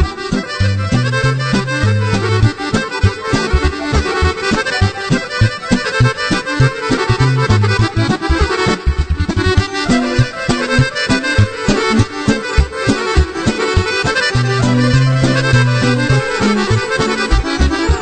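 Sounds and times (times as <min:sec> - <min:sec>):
accordion playing lead: 0:00.0 - 0:18.0
bass line: 0:00.0 - 0:18.0
steady beat: 0:00.0 - 0:18.0.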